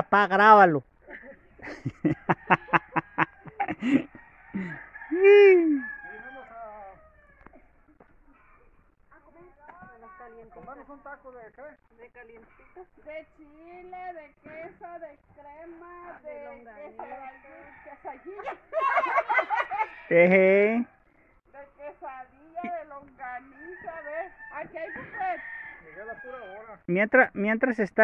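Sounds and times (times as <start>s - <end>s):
chicken cackling: 1.6s - 8.8s, 17.0s - 20.3s, 23.5s - 26.8s.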